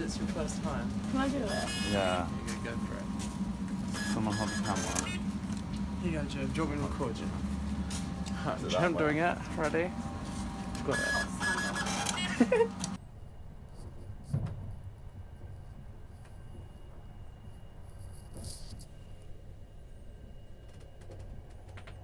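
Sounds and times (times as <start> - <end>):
train rumble inside carriage: 0.0 - 22.0
short laugh: 12.2 - 12.8.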